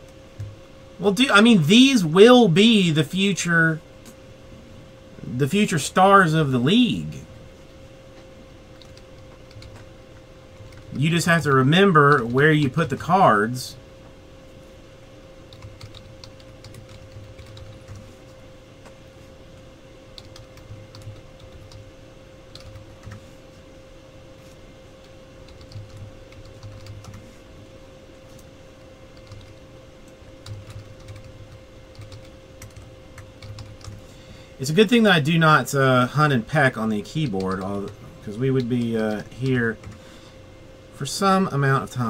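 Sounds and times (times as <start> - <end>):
faint steady hum: 0.0 - 42.0
typing on computer keyboard: 8.7 - 9.8, 10.6 - 10.9, 15.5 - 18.0, 20.2 - 21.8, 22.5 - 23.2, 25.5 - 27.2, 29.2 - 29.6, 30.4 - 34.0.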